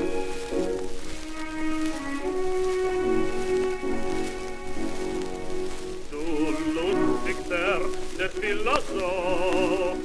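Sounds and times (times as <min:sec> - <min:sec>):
orchestral music: 0:00.0 - 0:10.0
record surface crackle and hiss: 0:00.0 - 0:10.0.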